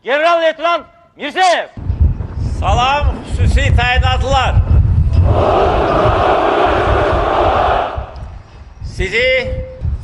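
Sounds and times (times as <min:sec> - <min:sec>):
soldiers shouting in unison: 0:05.2 - 0:08.2.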